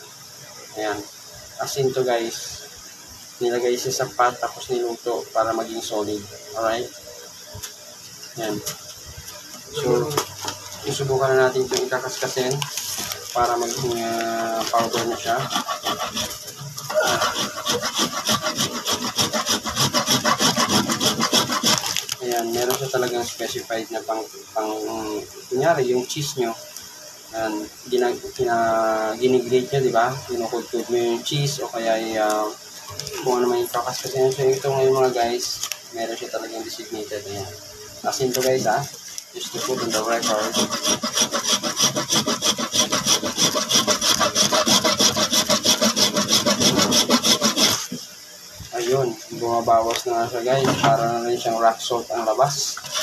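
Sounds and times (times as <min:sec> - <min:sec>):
rasp grater scraping salt: 0:11.8 - 0:22.9, 0:39.4 - 0:48.0, 0:52.7 - 0:53.0.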